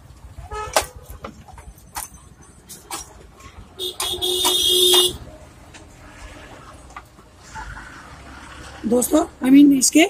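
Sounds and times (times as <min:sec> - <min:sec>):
horn honk: 0:03.8 - 0:05.2.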